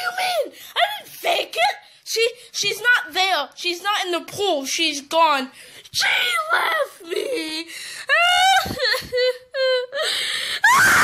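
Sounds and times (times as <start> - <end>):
high-pitched voice wailing and screaming: 10.7 - 11.0.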